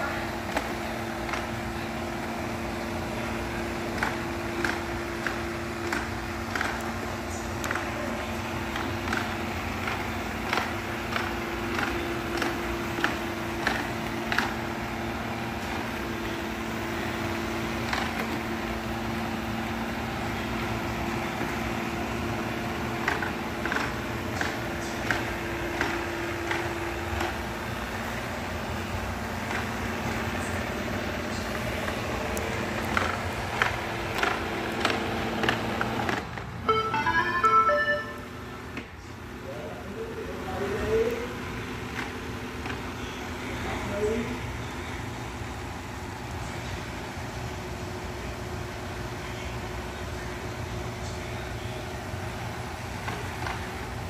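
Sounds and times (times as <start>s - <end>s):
electronic chime melody: 36.6s - 38.4s.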